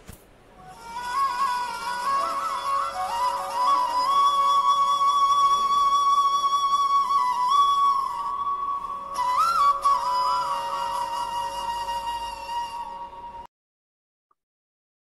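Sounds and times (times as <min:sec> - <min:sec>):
slow solo instrumental melody: 0:00.4 - 0:13.5.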